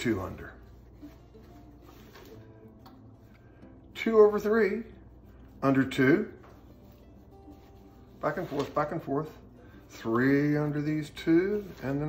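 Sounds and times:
rope rustling: 0:00.6 - 0:03.0.

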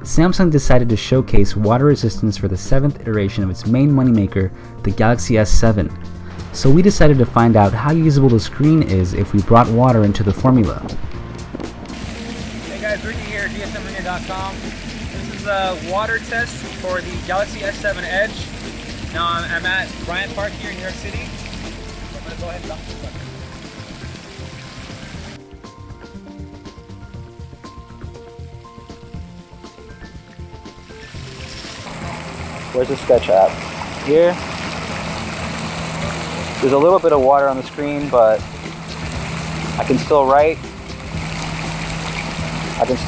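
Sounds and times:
background music with held notes: 0:00.0 - 0:43.0
fountain water splashing: 0:11.9 - 0:25.4, 0:27.4 - 0:43.0.

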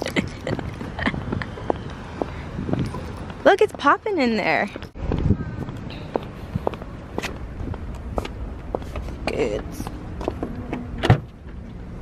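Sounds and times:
footsteps on asphalt: 0:00.5 - 0:10.9.

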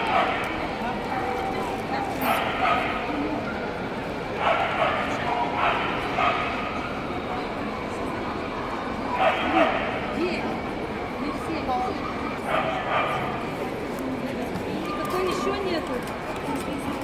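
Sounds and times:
crowd chatter: 0:00.0 - 0:17.0.

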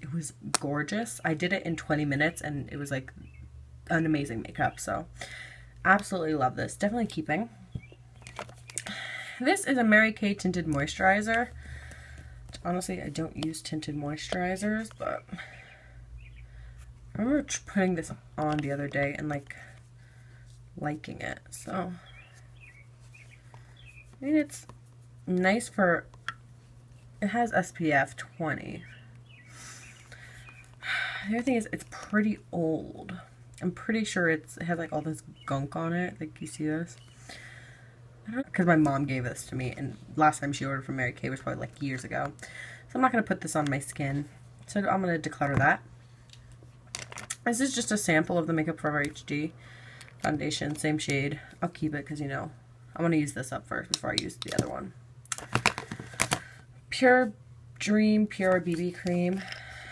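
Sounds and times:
low steady hum: 0:00.0 - 0:59.9
person breathing softly: 0:05.2 - 0:05.8, 0:11.5 - 0:12.5, 0:15.3 - 0:17.0, 0:19.6 - 0:20.6, 0:37.1 - 0:38.0, 0:42.4 - 0:42.9, 0:49.6 - 0:50.2, 0:59.4 - 0:59.9
plastic containers clicking: 0:07.8 - 0:08.9, 0:46.9 - 0:47.4, 0:53.9 - 0:54.7, 0:55.3 - 0:56.5.

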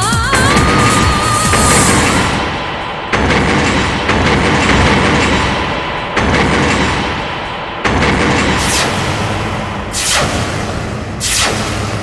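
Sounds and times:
background film score: 0:00.0 - 0:12.0
loud echoing booms: 0:00.3 - 0:12.0
whoosh: 0:00.7 - 0:12.0.

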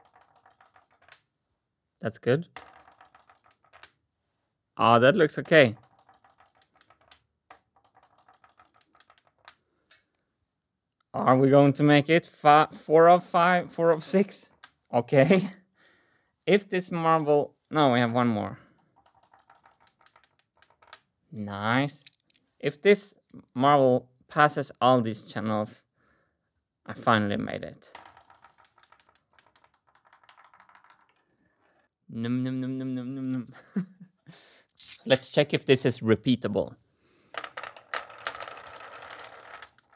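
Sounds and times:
marbles clicking: 0:00.0 - 0:01.2, 0:02.6 - 0:04.0, 0:05.1 - 0:10.0, 0:18.0 - 0:21.1, 0:21.8 - 0:22.4, 0:27.8 - 0:31.9, 0:34.7 - 0:35.4, 0:37.3 - 0:39.9.

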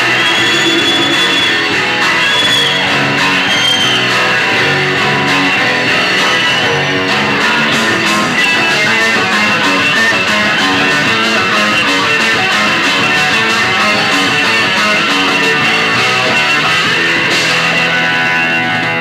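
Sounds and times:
electric guitar: 0:00.0 - 0:19.0
live rock band playing: 0:00.0 - 0:19.0.

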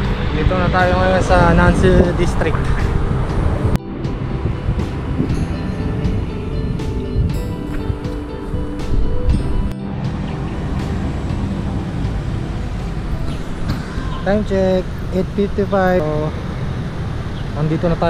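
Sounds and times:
background music with held notes: 0:00.0 - 0:15.1
road and traffic noise: 0:00.0 - 0:18.0.

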